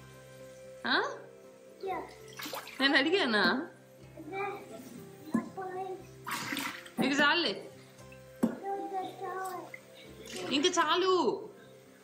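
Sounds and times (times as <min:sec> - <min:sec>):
background music: 0:00.0 - 0:12.0
child's voice: 0:01.8 - 0:02.2, 0:04.2 - 0:06.1, 0:08.5 - 0:09.8.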